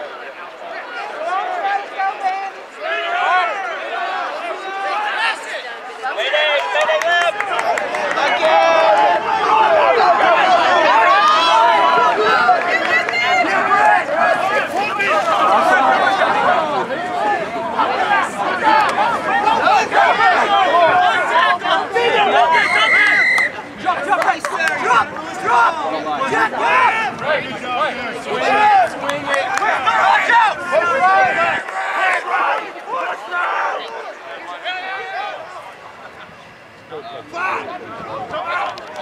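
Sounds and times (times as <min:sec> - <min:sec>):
spectators shouting and cheering: 0:00.0 - 0:39.0
referee's whistle blast: 0:22.4 - 0:23.6.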